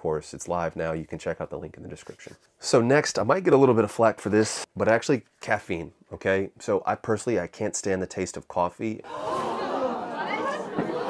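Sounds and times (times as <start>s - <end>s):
crowd talking: 9.1s - 11.0s.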